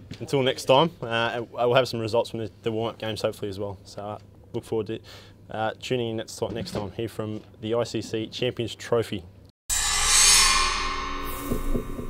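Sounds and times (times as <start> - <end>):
short low hits: 10.7 - 12.0.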